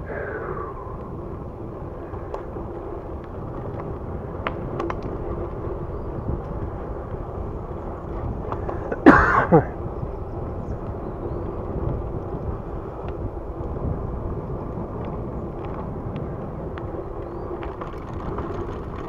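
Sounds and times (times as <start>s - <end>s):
bicycle tyres rolling on pavement: 0.0s - 19.0s
wind buffeting microphone: 0.0s - 19.0s.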